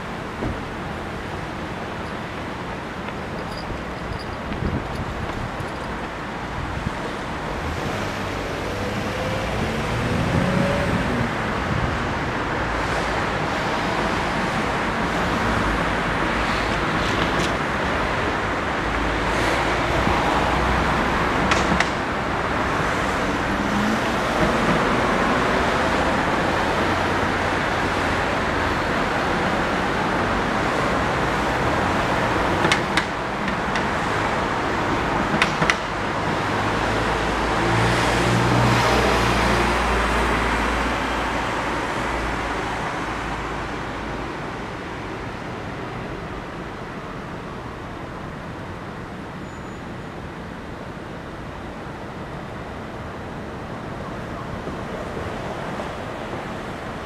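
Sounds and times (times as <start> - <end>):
passing cars: 0.0 - 57.0
vehicle passing close: 7.6 - 13.0.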